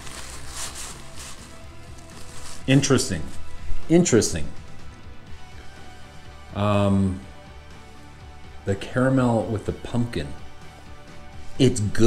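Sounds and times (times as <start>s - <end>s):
paper napkin rustling: 0.0s - 3.6s
quiet background music: 0.0s - 12.0s.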